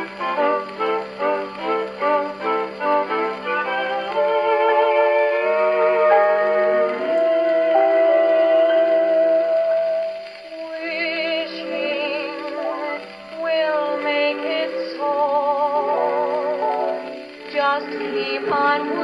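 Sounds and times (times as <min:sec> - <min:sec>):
gramophone record playing instrumental: 0:00.0 - 0:19.0
person singing: 0:00.0 - 0:19.0.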